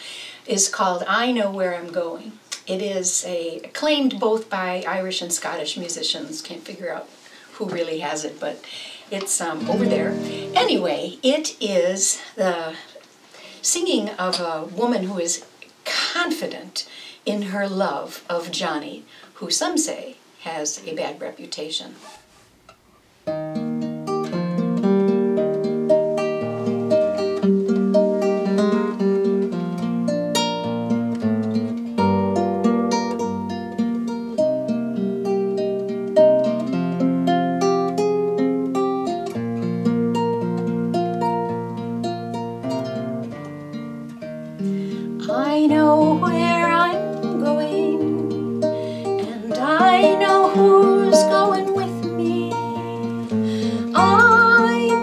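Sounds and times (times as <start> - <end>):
woman singing: 9.6 - 10.8, 45.2 - 55.0
fingerpicked classical guitar: 9.6 - 11.1, 23.2 - 55.0.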